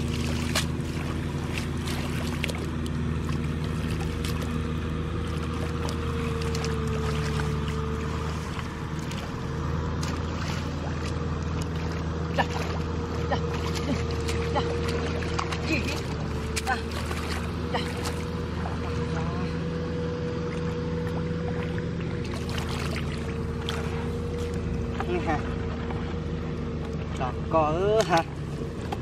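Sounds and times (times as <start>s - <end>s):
hands splashing in muddy water: 0.0s - 19.4s, 20.3s - 27.2s
small engine running: 0.0s - 29.0s.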